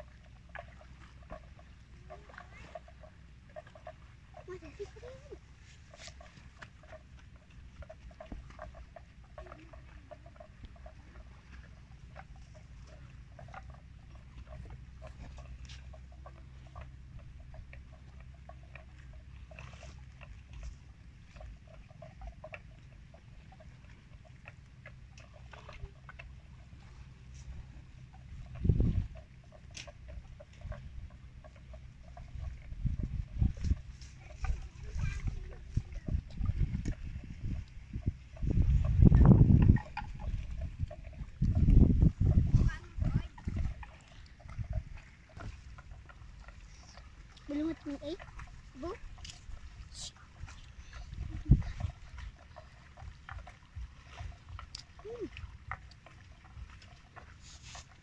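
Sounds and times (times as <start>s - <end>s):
buffalo cropping grass and chewing: 0.0s - 58.0s.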